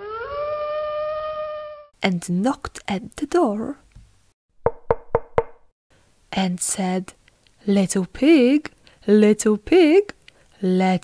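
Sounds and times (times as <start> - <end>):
knocks on a door: 4.6 - 5.6.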